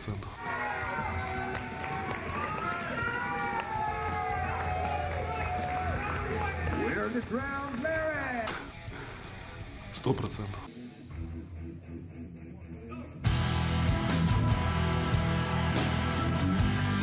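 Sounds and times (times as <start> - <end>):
music: 0.0 - 17.0
people shouting and yelling: 0.3 - 8.8.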